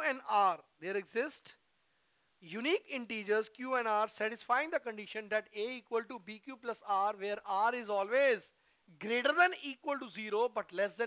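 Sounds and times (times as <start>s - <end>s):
man talking: 0.0s - 1.6s, 2.4s - 11.0s.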